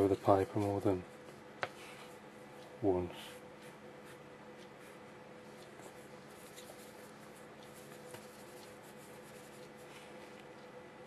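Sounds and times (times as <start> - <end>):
steady electrical hum: 0.0 - 11.0
brush strokes on wet paper: 3.1 - 10.4.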